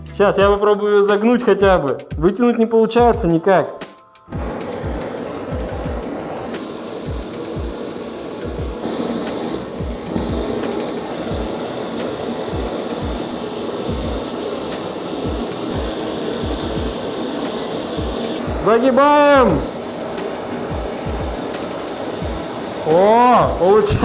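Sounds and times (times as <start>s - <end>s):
gas torches hissing: 1.5s - 24.0s.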